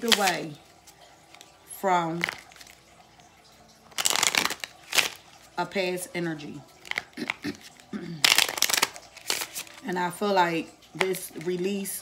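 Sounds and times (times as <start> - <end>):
cards being shuffled: 0.0 - 1.5, 3.9 - 5.2, 6.8 - 9.9.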